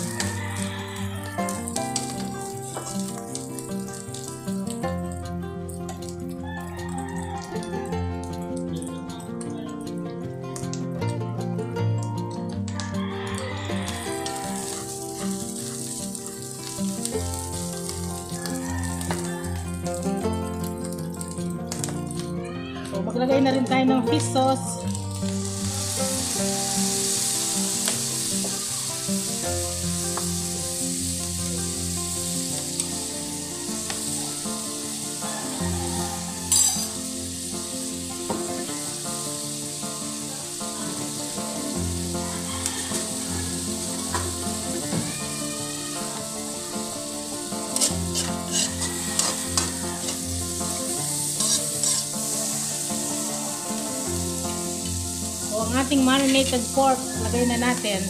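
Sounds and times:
food sizzling in a wok: 0.0s - 8.3s, 12.9s - 22.7s, 24.1s - 58.0s.

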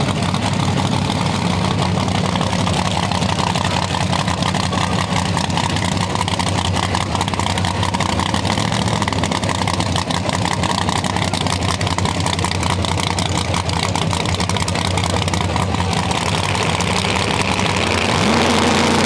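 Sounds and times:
race car engine idling: 0.0s - 19.0s.

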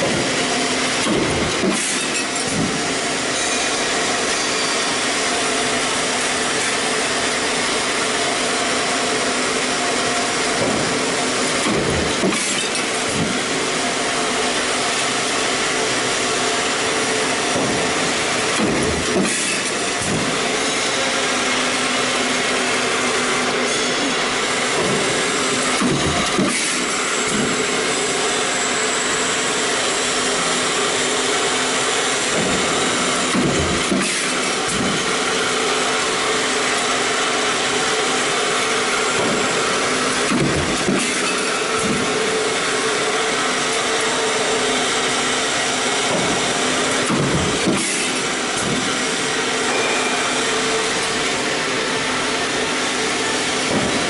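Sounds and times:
stamping press clunks: 0.0s - 0.4s, 1.0s - 2.9s, 10.6s - 11.0s, 11.6s - 13.5s, 17.5s - 20.4s, 24.7s - 27.6s, 32.3s - 35.1s, 40.2s - 42.2s, 46.1s - 48.9s, 53.6s - 54.0s.

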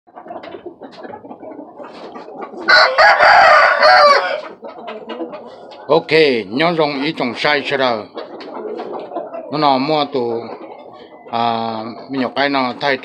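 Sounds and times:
chicken clucking: 0.1s - 13.0s
rooster crowing: 2.7s - 4.5s.

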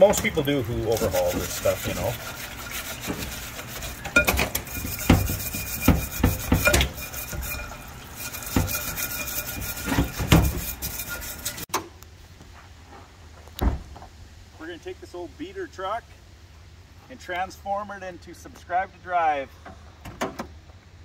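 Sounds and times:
brush bristles scraping metal: 0.0s - 11.7s
metal drum knocking on tray: 4.2s - 7.5s
thump: 13.6s - 14.1s.

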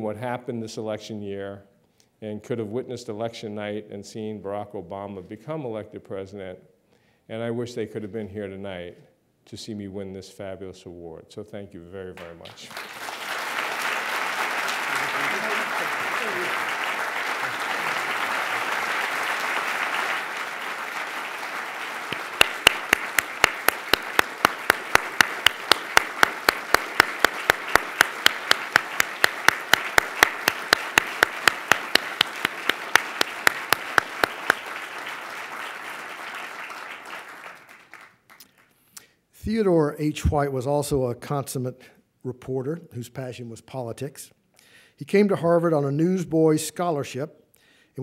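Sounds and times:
audience applauding: 12.2s - 38.7s
close single person clapping: 12.2s - 38.7s.

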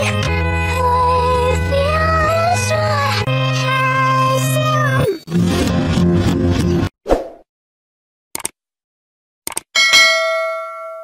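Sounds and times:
notification bell ding: 9.8s - 11.0s.

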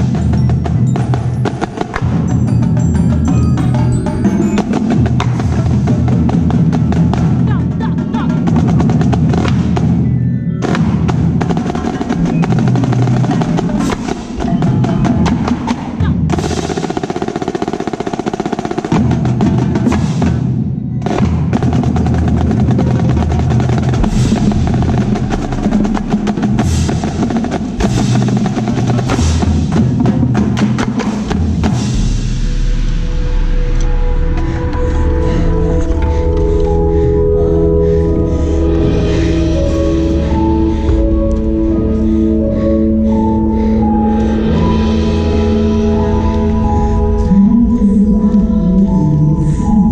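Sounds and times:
marching snare drum: 0.0s - 32.8s
tenor and bass drums: 0.0s - 42.1s.

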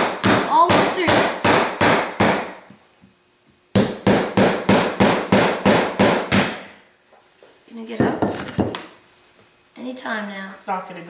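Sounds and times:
hammer striking a nail: 0.0s - 2.6s, 3.7s - 6.8s.

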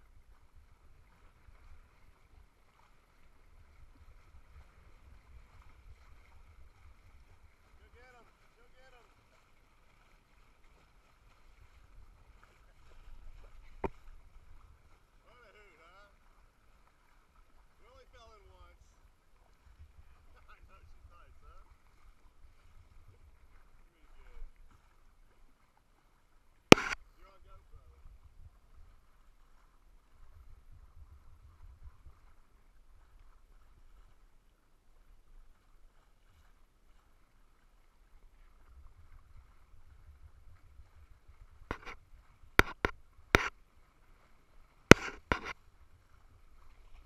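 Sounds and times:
wind rumble on microphone: 0.0s - 7.9s, 19.6s - 23.6s, 27.7s - 34.1s, 38.2s - 43.3s
sharp click: 26.7s - 27.0s, 42.6s - 43.5s, 44.9s - 45.5s.

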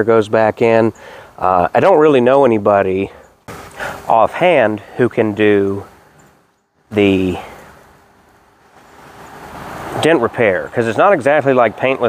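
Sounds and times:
outdoor rushing noise: 3.4s - 12.0s.

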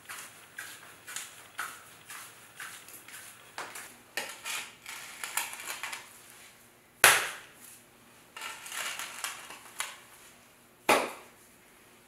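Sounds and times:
tool scraping clay: 0.0s - 6.1s, 8.4s - 9.9s.

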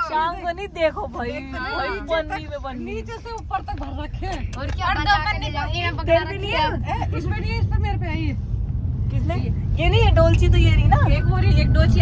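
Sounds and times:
people talking: 0.0s - 8.4s, 9.1s - 12.0s
steady low rumble: 0.0s - 12.0s.

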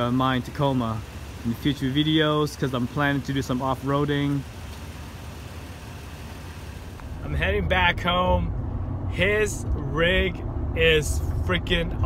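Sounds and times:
pickup truck engine idling: 0.0s - 12.0s.

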